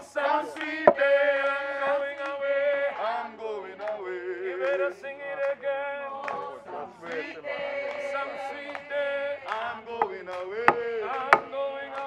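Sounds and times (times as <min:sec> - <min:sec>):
people singing together: 0:00.0 - 0:12.0
metal tool knocking on concrete: 0:10.0 - 0:11.5.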